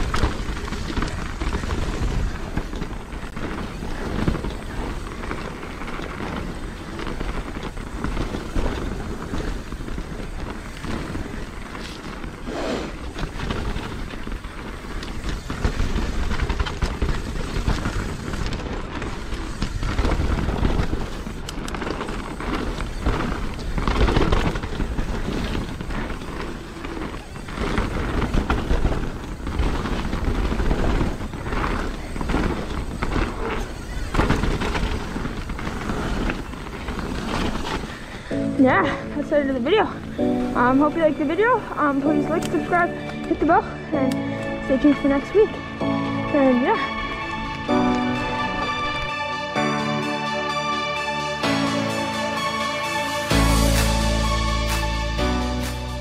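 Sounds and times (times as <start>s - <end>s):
bike knocking and rattling: 0.0s - 49.2s
bike tyres on gravel: 0.0s - 56.0s.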